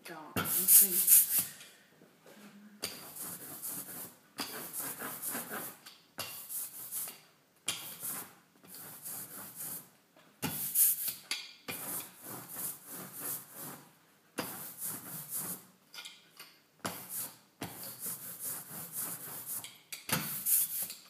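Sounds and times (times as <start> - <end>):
rubber brayer rolling through ink: 2.8 - 5.8, 6.4 - 9.9, 10.5 - 15.7, 16.9 - 21.0.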